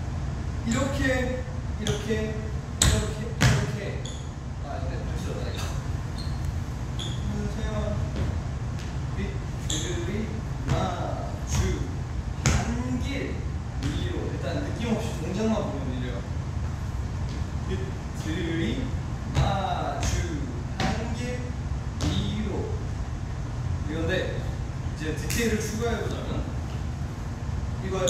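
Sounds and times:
low room hum: 0.0s - 28.0s
sneakers stomping on wooden floor: 8.1s - 9.0s, 10.6s - 11.8s.

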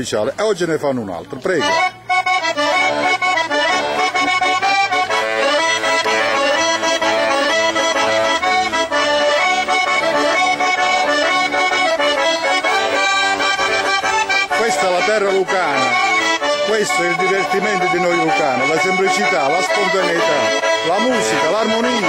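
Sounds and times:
button accordions playing a tune: 0.0s - 22.0s.

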